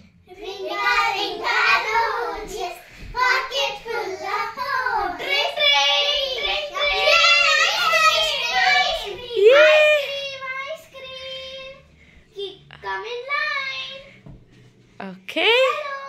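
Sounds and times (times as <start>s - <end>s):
girls singing together: 0.3s - 10.1s.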